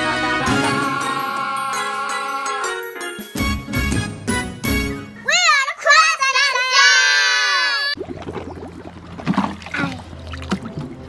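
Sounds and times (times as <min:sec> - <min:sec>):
sung jingle with processed voice: 0:00.7 - 0:02.9
child's voice: 0:05.2 - 0:08.0
water splashing: 0:07.9 - 0:11.0.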